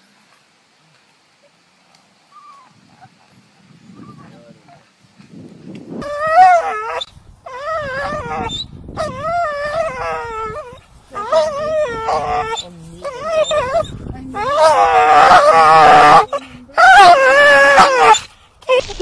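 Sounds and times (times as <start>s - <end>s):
dog whining howls: 6.0s - 18.3s.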